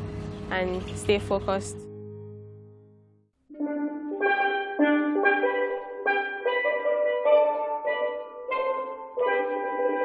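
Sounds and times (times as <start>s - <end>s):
steelpan chords: 3.5s - 10.0s.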